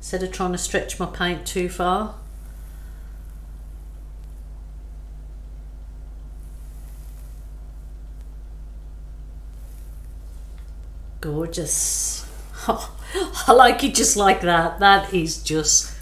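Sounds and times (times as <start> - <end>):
low background hum: 0.0 - 16.0
faint hiss: 2.2 - 10.8.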